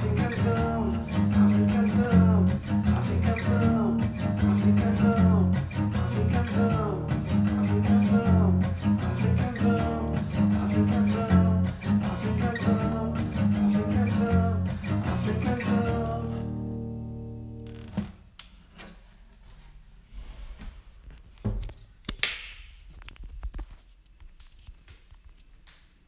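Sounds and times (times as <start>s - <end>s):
guitar strumming chords: 0.0s - 17.6s.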